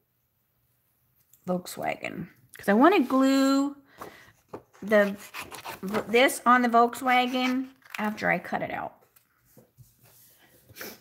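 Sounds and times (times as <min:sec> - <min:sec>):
cardstock handling: 0:04.0 - 0:06.3
scissors on a desk: 0:04.8 - 0:06.1.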